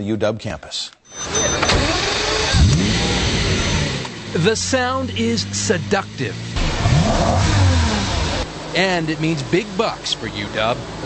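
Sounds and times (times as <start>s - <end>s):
car engine revving: 1.2s - 11.0s.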